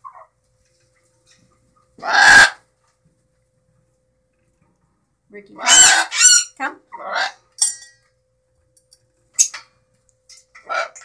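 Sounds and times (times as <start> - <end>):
macaw squawk: 2.0 - 2.6, 5.6 - 7.4.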